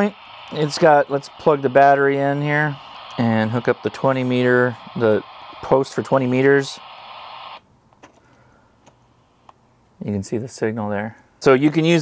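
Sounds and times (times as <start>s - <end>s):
faint sharp clicks: 2.8s - 3.2s.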